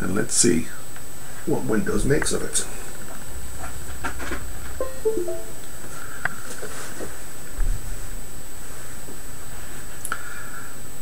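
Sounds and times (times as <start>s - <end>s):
device-connected chime: 4.8s - 5.6s.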